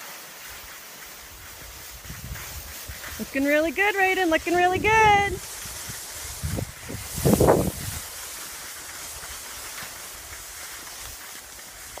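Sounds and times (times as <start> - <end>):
rush of snow or air: 0.0 - 12.0
skis hissing over snow: 0.0 - 12.0.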